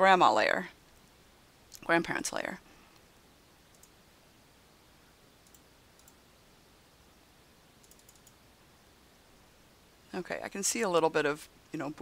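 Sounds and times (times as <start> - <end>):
computer mouse clicks: 3.7 - 4.0, 5.4 - 6.2, 7.8 - 8.4.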